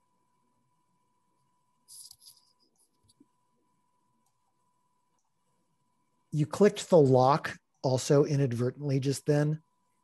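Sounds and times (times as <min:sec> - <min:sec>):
faint scratchy rustle: 0:01.8 - 0:03.3.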